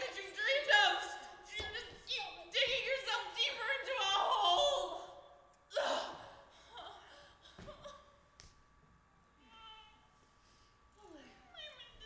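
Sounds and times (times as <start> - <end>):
woman sobbing: 5.7 - 8.2.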